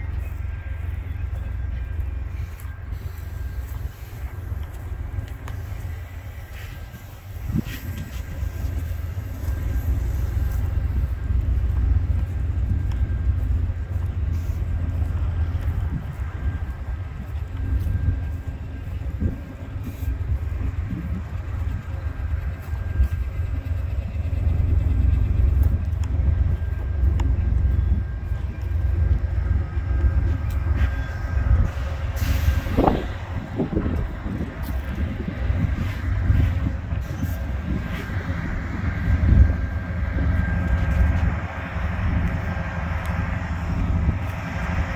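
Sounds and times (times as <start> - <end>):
train wheels rumbling on rails: 0.0 - 44.9.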